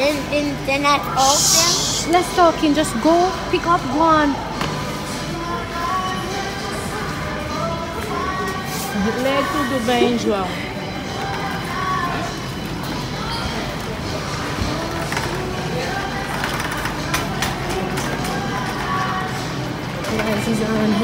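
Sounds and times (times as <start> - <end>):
background music: 0.0 - 21.0
indistinct voices: 0.0 - 21.0.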